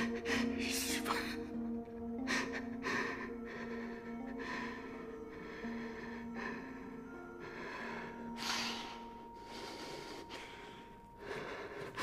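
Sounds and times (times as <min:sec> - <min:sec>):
man breathing heavily: 0:00.0 - 0:12.0.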